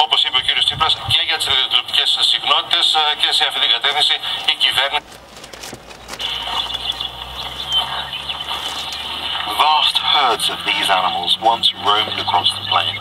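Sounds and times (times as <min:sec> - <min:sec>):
broadcast voice: 0:00.0 - 0:05.0, 0:07.7 - 0:13.0.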